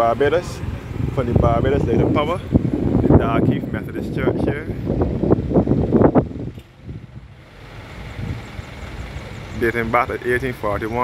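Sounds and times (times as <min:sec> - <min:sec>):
street noise rumble: 0:00.0 - 0:11.0.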